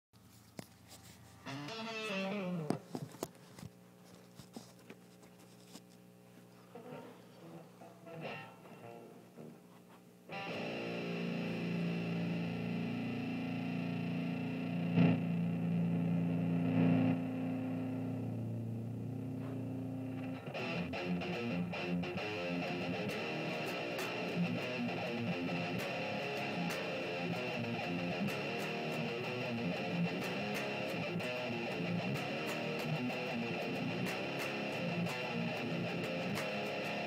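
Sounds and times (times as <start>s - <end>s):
distorted electric guitar: 1.3s - 2.9s, 6.7s - 9.7s, 10.3s - 37.0s
guitar string noise: 1.3s - 3.2s, 6.6s - 9.7s, 10.3s - 37.0s.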